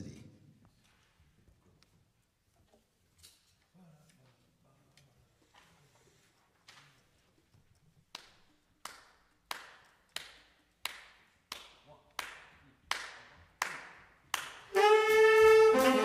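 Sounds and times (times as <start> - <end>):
brass section held chord: 14.7 - 16.0.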